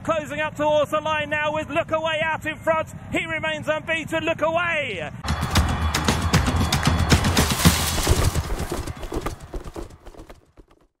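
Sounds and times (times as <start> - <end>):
galloping horse hoofbeats: 5.3 - 11.0.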